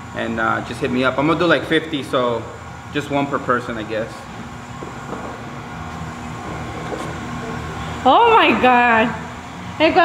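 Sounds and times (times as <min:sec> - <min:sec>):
mechanical hum and rumble: 0:00.0 - 0:10.0.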